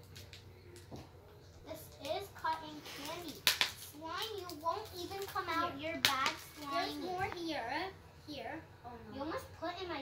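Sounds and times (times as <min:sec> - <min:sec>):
children talking: 0:01.6 - 0:10.0.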